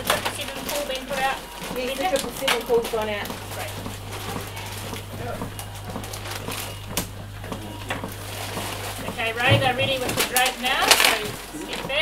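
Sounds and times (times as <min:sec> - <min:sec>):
chest compression knocks: 0:00.0 - 0:12.0
low electrical hum: 0:00.0 - 0:12.0.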